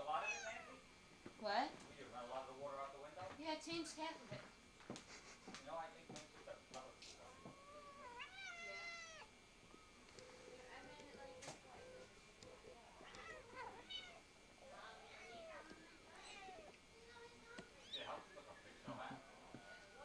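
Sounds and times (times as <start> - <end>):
kittens mewing: 7.2 - 10.5, 12.9 - 18.3.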